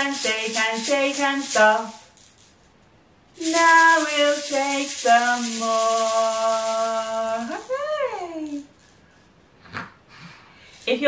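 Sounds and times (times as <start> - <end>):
plastic baby shaker rattling: 0.0 - 2.7, 3.4 - 9.1.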